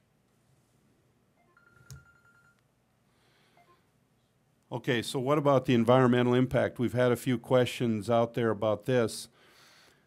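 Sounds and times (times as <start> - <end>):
faint electronic beep: 3.5 - 3.9.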